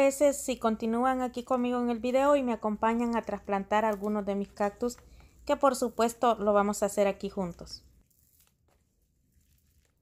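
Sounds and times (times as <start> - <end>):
potting mix trickling into plastic tub: 8.0 - 10.0.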